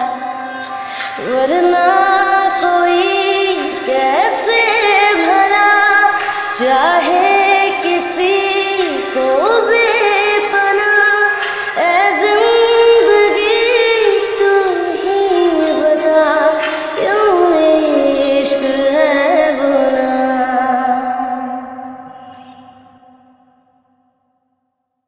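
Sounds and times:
woman singing long wavering notes: 0:00.0 - 0:23.7.

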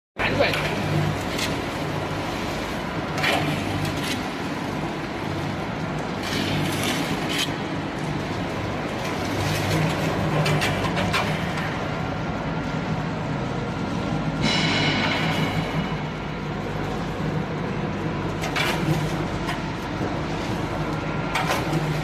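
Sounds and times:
machine drive hum: 0:00.2 - 0:22.0.

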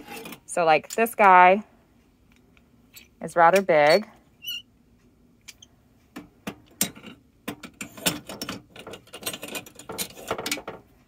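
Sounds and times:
metal curling irons clinking: 0:00.5 - 0:01.5.

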